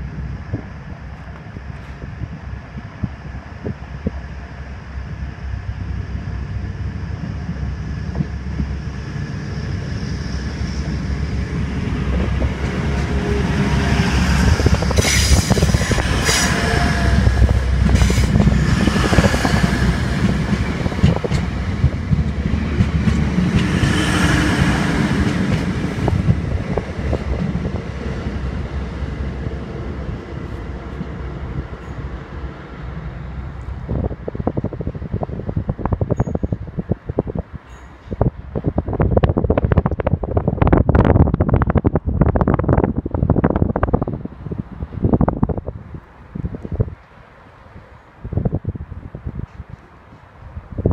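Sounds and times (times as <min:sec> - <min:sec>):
train passing with hiss: 0:00.0 - 0:36.1
diesel train engine rumble: 0:00.0 - 0:50.9
wind on microphone: 0:00.0 - 0:50.9.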